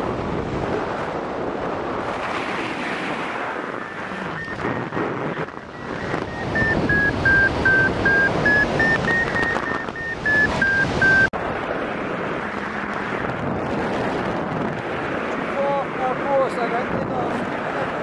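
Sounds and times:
wind noise on microphone: 0:00.0 - 0:18.0
variometer beeping: 0:03.8 - 0:11.3.

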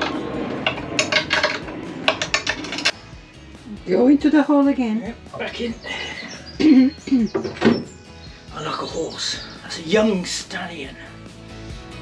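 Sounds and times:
metal brackets clinking: 0:00.0 - 0:03.0.

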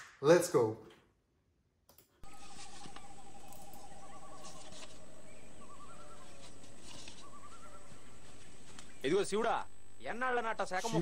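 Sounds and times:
birds warbling trills: 0:02.2 - 0:11.0.

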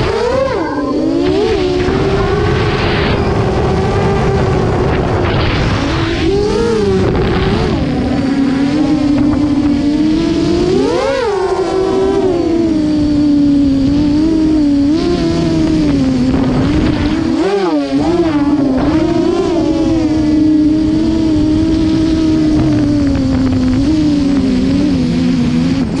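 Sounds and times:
drone propellers whining: 0:00.0 - 0:26.0
wind rumbling on microphone: 0:00.0 - 0:26.0.

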